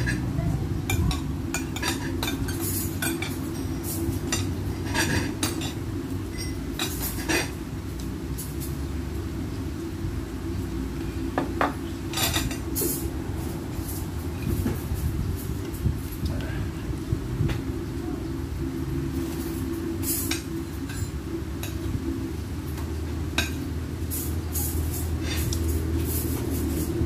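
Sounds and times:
low background hum: 0.0s - 27.0s.

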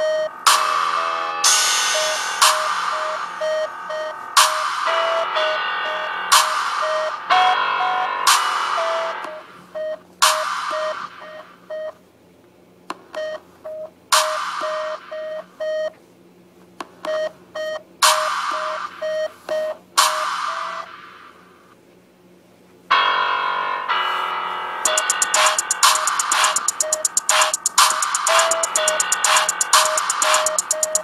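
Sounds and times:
repeating electronic beep: 0.0s - 11.9s, 24.8s - 31.0s
loud electronic hits: 0.4s - 9.5s, 24.9s - 31.0s.

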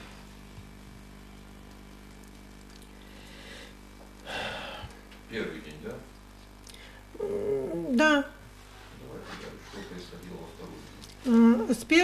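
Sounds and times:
woman humming down in pitch: 7.1s - 8.1s, 11.2s - 11.7s
woman speaking: 7.2s - 8.4s, 11.2s - 12.0s.

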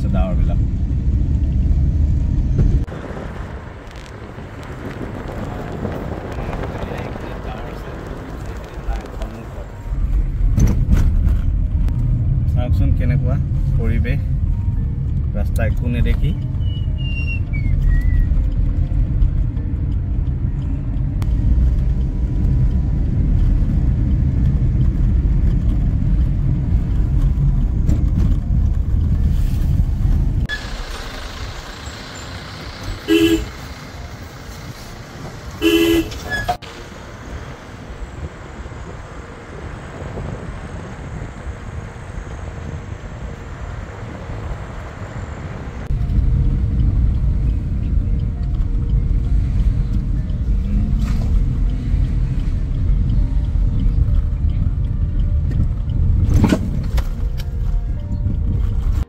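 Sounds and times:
car road and engine noise: 0.0s - 59.0s
car horn toots: 33.0s - 33.6s, 35.6s - 36.6s.

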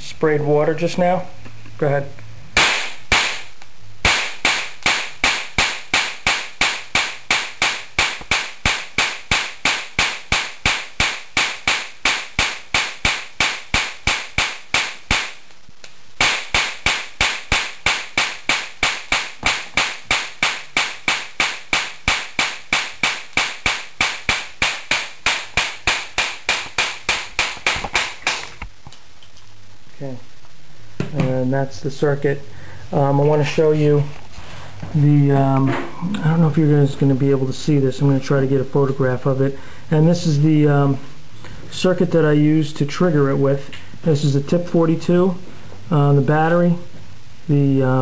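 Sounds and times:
electric sparks snapping: 2.6s - 29.6s.

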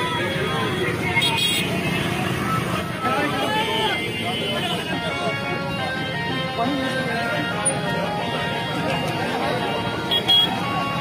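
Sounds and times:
crowd voices talking and calling: 0.0s - 11.0s
motorcycles and traffic running: 0.0s - 11.0s.

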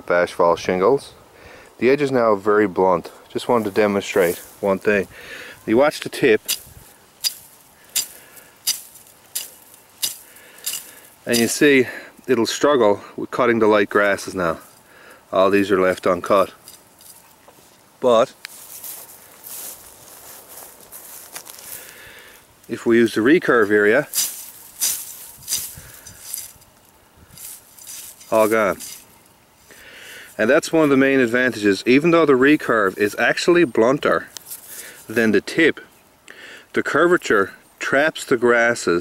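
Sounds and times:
knife swishing through dry grass: 6.5s - 11.6s, 23.6s - 26.6s, 27.3s - 29.1s
knife swishing through grass: 23.7s - 26.6s, 27.3s - 29.1s.

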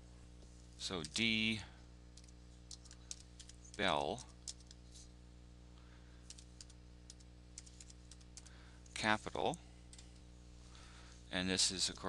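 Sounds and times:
steady low hum: 0.0s - 12.0s
computer keyboard keystrokes: 2.2s - 4.8s, 6.3s - 8.5s.

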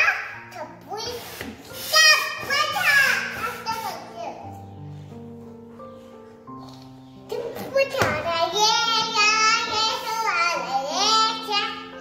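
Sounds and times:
child talking and exclaiming: 0.0s - 4.7s, 7.2s - 12.0s.

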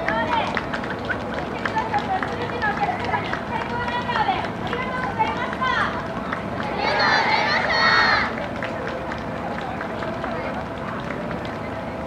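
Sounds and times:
outdoor background noise: 0.0s - 12.0s
people talking: 0.0s - 12.0s.

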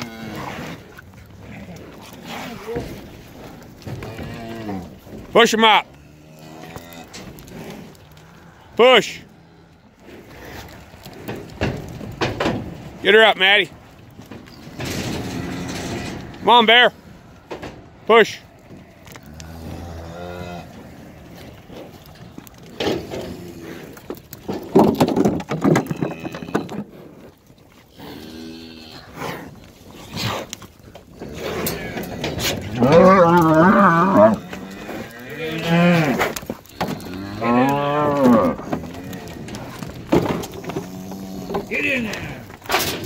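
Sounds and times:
cattle mooing: 0.0s - 13.3s, 14.4s - 24.2s, 27.9s - 29.4s, 31.1s - 43.0s.

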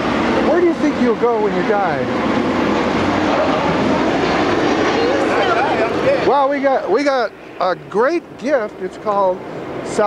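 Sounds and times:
passing vehicle noise: 0.0s - 10.0s.

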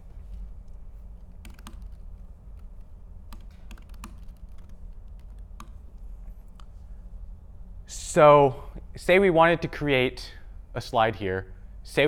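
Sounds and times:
low steady hum: 0.0s - 12.0s
laptop keyboard keystrokes: 1.4s - 5.9s.

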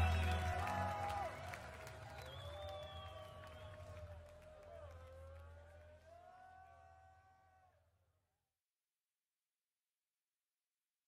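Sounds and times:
low concert hall rumble: 0.0s - 6.4s.

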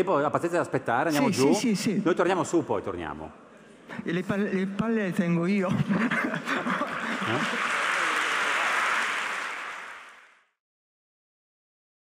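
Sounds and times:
audience applause: 6.6s - 10.5s.

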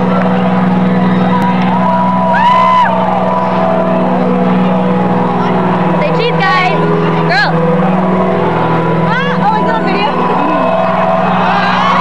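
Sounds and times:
crowd screaming and whooping: 0.0s - 12.0s.

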